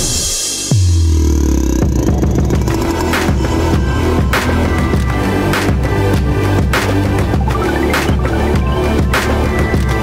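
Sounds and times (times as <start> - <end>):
music with deep bass and beat: 0.0 - 10.0.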